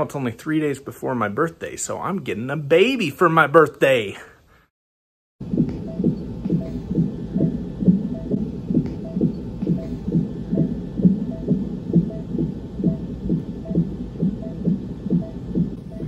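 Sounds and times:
fetal heartbeat pulses: 0:05.4 - 0:16.0.

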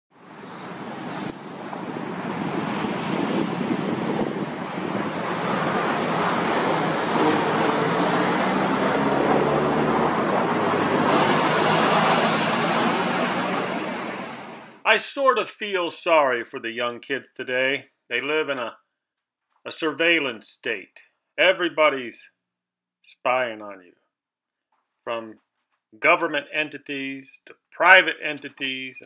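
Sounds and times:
ocean surf: 0:00.2 - 0:14.8.

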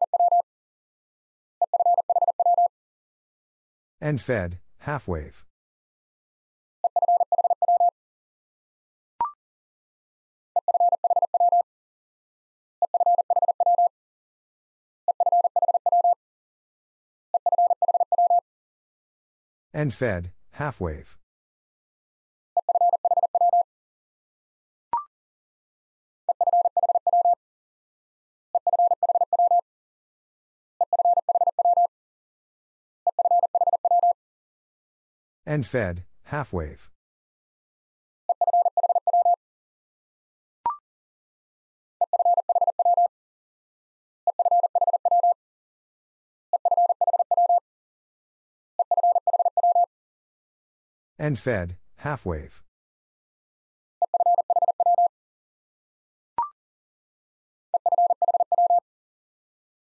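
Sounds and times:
morse code beeping: 0:46.6 - 0:47.6, 0:54.1 - 0:55.1, 0:57.8 - 0:58.8.

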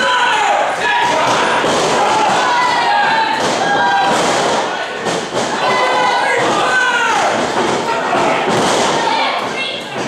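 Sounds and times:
voices and crowd: 0:00.0 - 0:10.0.

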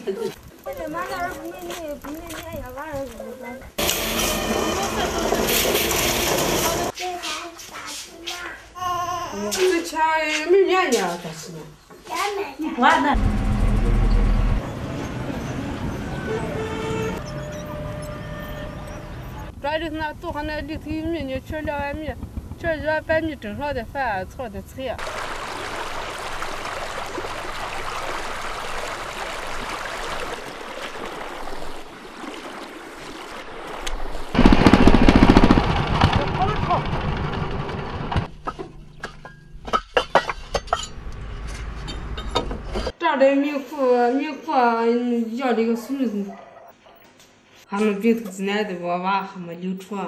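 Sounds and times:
street traffic noise: 0:00.7 - 0:09.0, 0:12.1 - 0:24.8, 0:37.0 - 0:43.0
vehicle horn: 0:03.8 - 0:06.8, 0:16.0 - 0:19.5
bus engine rumbling: 0:13.1 - 0:24.9.

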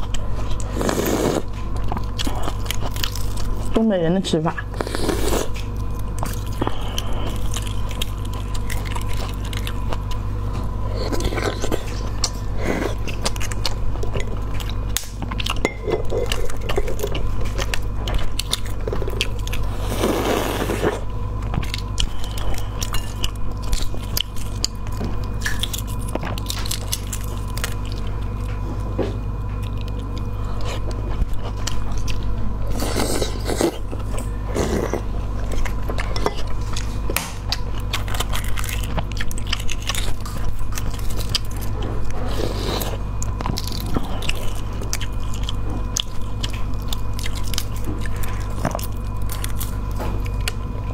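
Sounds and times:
chewing: 0:00.0 - 0:03.8, 0:04.6 - 0:50.9
steady low hum: 0:00.0 - 0:50.9.

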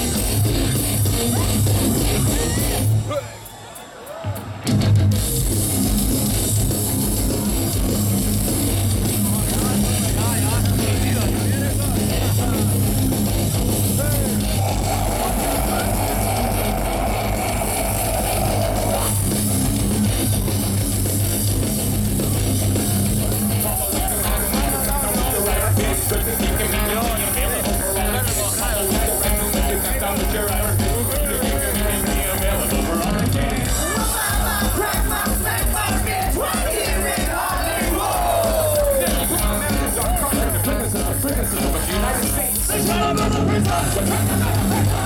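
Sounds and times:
bass guitar: 0:00.0 - 0:03.2, 0:04.5 - 0:45.0
distorted electric guitars: 0:00.0 - 0:03.2, 0:04.4 - 0:45.0
live metal band playing: 0:00.0 - 0:03.6, 0:04.2 - 0:45.0
crowd shouting: 0:00.0 - 0:45.0
drums: 0:00.0 - 0:45.0.

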